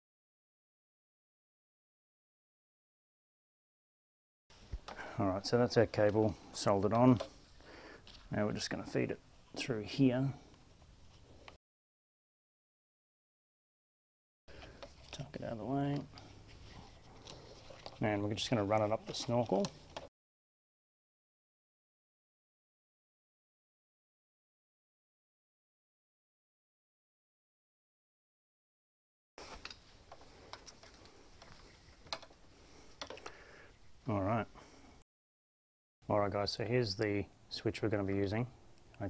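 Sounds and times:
gloved hands rustling: 14.5s - 20.1s, 29.4s - 34.0s.

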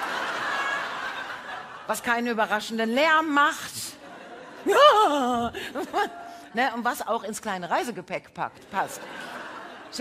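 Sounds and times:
audience laughing: 0.0s - 2.6s, 3.8s - 6.4s, 8.5s - 10.0s.

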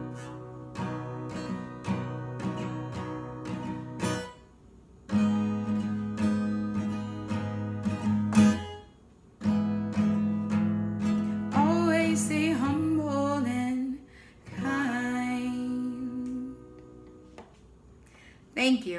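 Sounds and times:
acoustic guitar strumming: 0.0s - 17.4s
woman singing: 11.5s - 17.0s.

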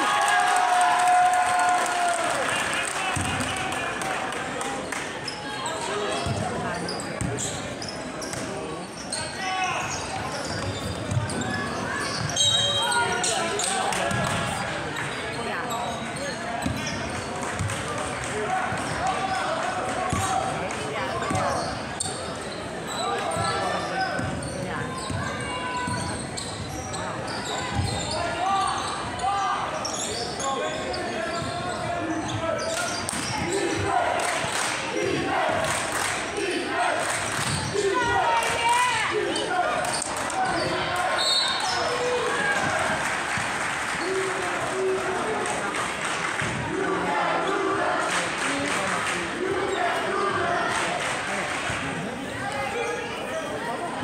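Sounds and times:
indistinct chatter of spectators: 0.0s - 54.0s.

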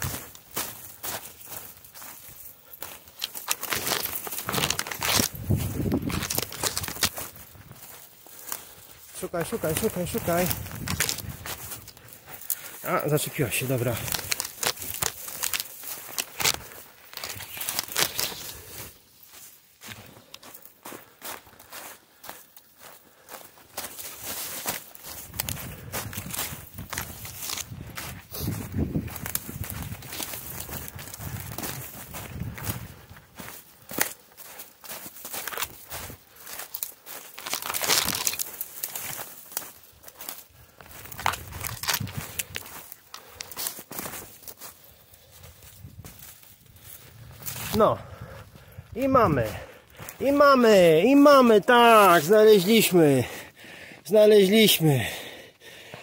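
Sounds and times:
footsteps crunching dry leaves: 0.0s - 55.8s.

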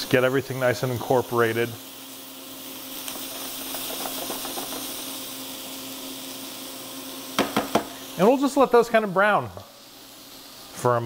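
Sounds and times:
beans sizzling in oil: 0.0s - 11.0s
spatula stirring: 3.1s - 5.1s
spatula knocking against pan: 3.7s - 4.9s, 7.4s - 7.9s.

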